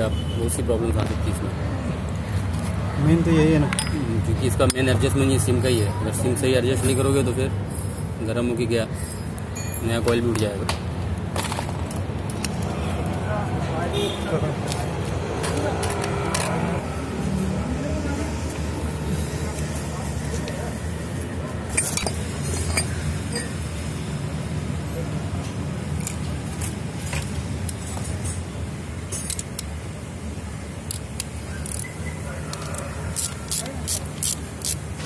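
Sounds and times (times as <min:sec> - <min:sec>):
traffic rumble: 0:00.0 - 0:35.0
metal parts clinking: 0:21.7 - 0:23.5, 0:29.1 - 0:29.7.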